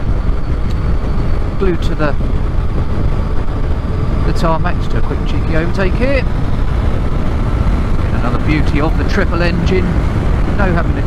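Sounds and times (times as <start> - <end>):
wind and road noise in helmet: 0.0 - 11.0.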